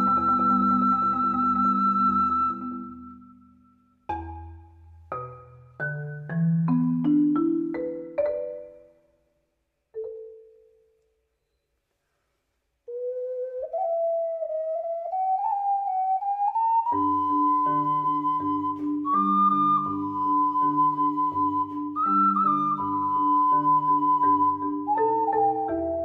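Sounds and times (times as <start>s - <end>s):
ocarina melody: 0.0s - 9.1s, 12.8s - 26.0s
marimba playing: 4.0s - 9.2s, 9.9s - 11.0s, 17.2s - 26.0s.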